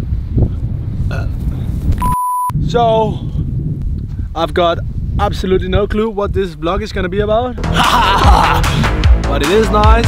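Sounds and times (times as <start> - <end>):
wind buffeting microphone: 0.0 - 7.6
throaty vocal sound: 1.0 - 1.6, 7.6 - 9.0.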